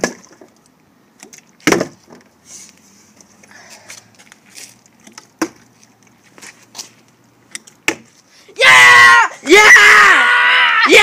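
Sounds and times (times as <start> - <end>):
boy yelling excitedly: 8.5 - 11.0.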